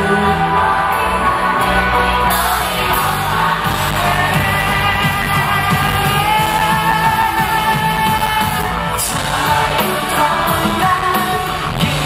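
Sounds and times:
drums: 0.0s - 12.0s
keyboard: 0.0s - 12.0s
man singing: 0.0s - 12.0s.

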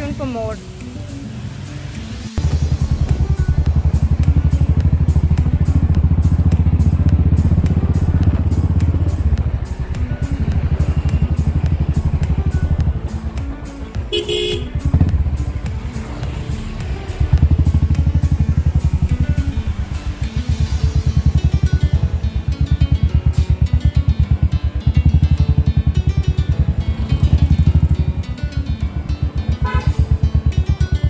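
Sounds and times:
motorcycle engine running: 2.4s - 31.0s
short horn honk: 14.1s - 14.8s, 29.6s - 30.0s.

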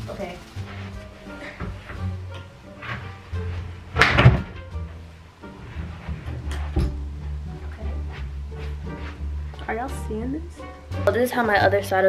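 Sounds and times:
background music: 0.0s - 12.0s
loud bump: 3.9s - 4.8s.

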